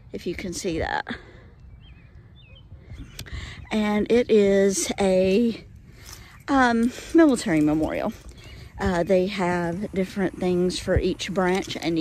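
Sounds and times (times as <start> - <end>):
low outdoor background noise: 0.0 - 12.0
small bird chirping: 1.6 - 5.0, 7.4 - 11.9.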